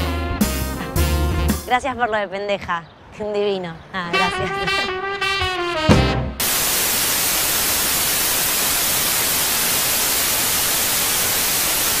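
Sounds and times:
white noise static hiss: 6.3s - 12.0s.

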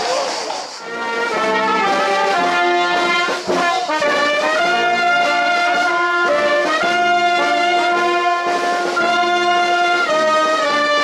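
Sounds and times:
brass chords: 0.8s - 11.0s.

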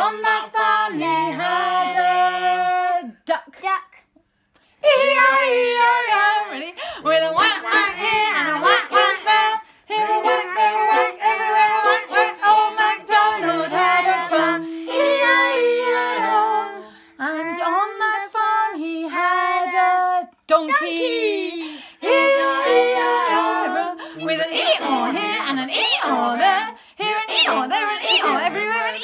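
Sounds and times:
children and woman singing: 0.0s - 3.4s, 4.8s - 29.0s
fiddle playing: 7.1s - 16.9s, 22.0s - 29.0s.

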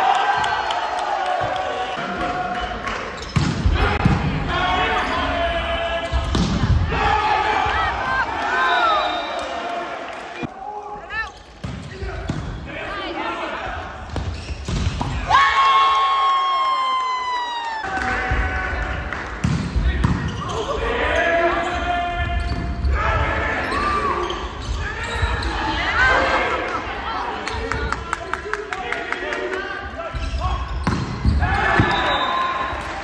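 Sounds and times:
people shouting and calling out: 3.6s - 14.0s.

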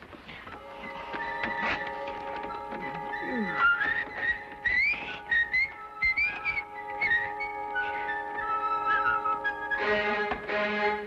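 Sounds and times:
soft background music: 0.0s - 11.0s
person whistling a tune: 2.5s - 9.9s.

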